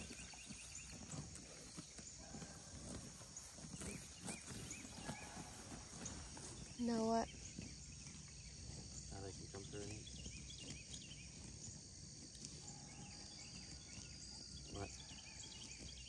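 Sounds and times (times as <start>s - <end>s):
high-pitched insect chorus: 0.0s - 16.0s.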